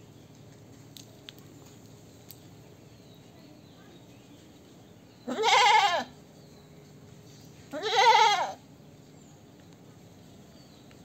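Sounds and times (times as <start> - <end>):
goat bleating: 5.3 - 6.1, 7.7 - 8.6.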